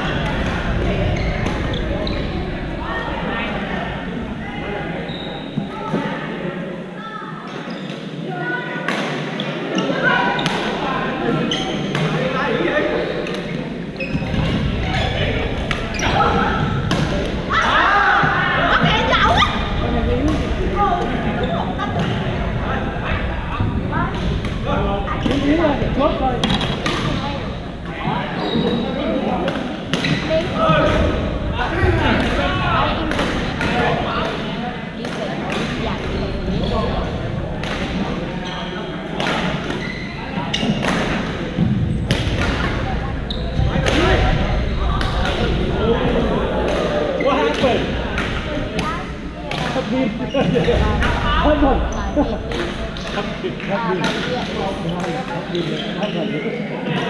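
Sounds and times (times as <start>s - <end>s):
players talking and calling: 0.0s - 57.0s.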